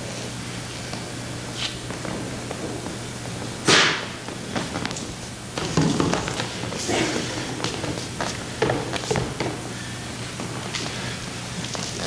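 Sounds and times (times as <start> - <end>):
sharp smack: 3.6 - 4.1.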